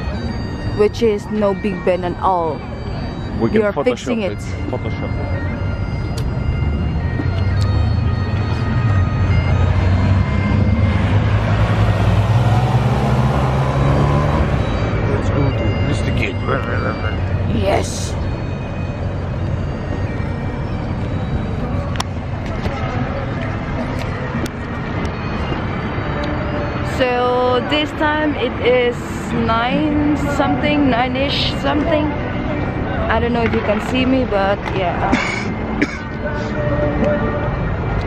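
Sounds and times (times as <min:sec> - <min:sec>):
tyre and road noise: 0:00.0 - 0:38.0
vehicle engine: 0:02.5 - 0:38.0.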